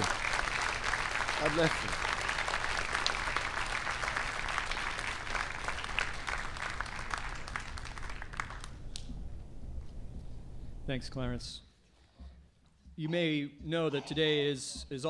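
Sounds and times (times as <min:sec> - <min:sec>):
audience applauding: 0:00.0 - 0:09.1.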